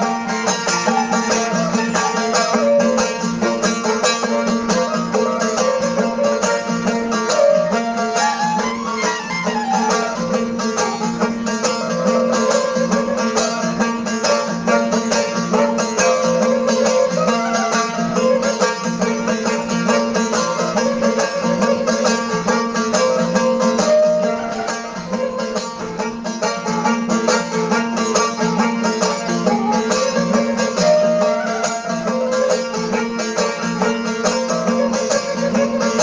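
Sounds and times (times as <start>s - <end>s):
bowed string melody: 0.0s - 36.0s.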